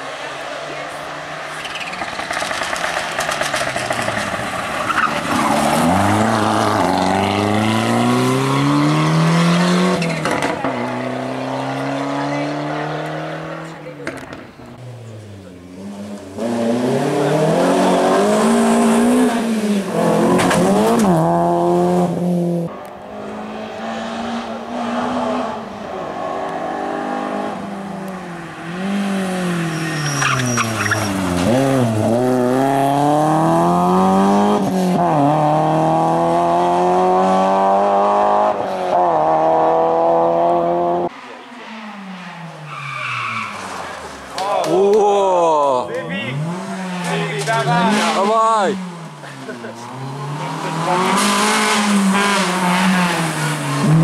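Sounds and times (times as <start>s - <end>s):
rally car accelerating: 0.0s - 54.0s.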